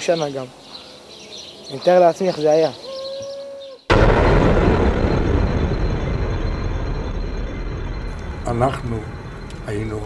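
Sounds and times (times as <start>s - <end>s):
deep rushing rumble: 3.9s - 10.0s.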